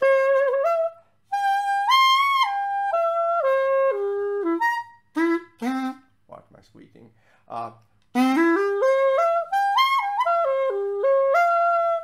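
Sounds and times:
reed pipe playing arpeggio: 8.2 - 12.0.

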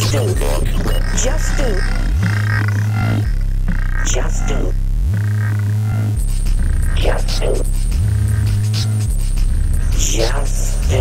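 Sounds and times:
buzzy warbling synthetic tones: 0.0 - 11.0
low bass drone: 0.0 - 11.0.

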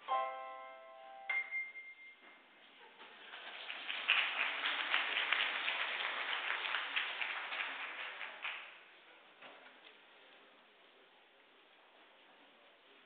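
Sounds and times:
crowd applauding: 3.1 - 8.8.

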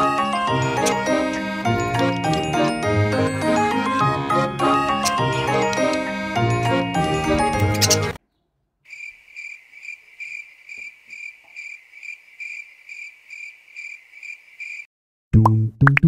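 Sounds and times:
music: 0.0 - 8.2, 15.4 - 16.0.

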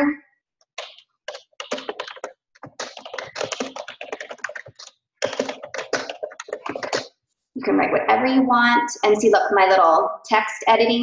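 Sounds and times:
typing on computer keyboard: 0.8 - 7.1.

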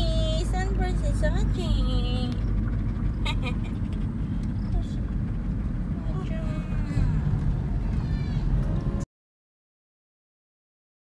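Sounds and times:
car cabin road and engine rumble: 0.0 - 9.0.

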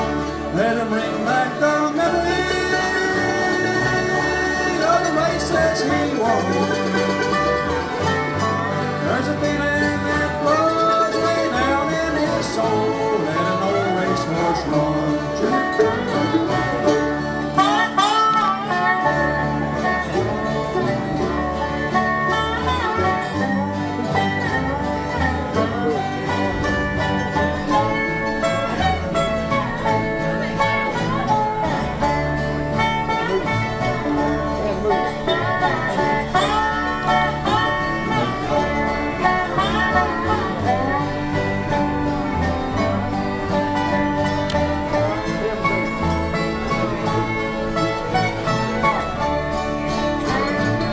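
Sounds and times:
picked banjo: 0.0 - 50.9
steady bass: 0.0 - 50.9
strummed acoustic guitar: 0.0 - 50.9.

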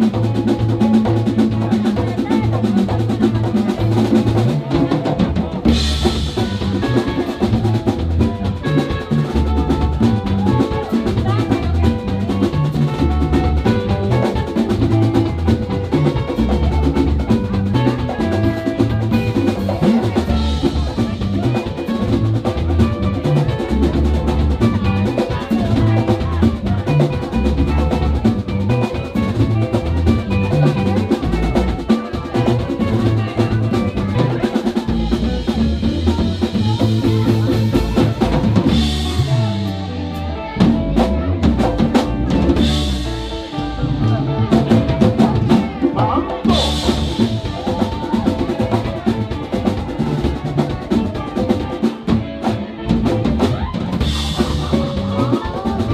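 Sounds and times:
congas: 0.0 - 55.9
drum kit: 0.0 - 55.9
electric guitars picking bright lines: 0.0 - 55.9.

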